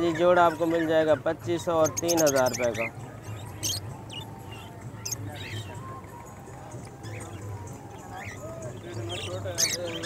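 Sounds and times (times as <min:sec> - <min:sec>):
birds chirping: 0:00.0 - 0:10.0.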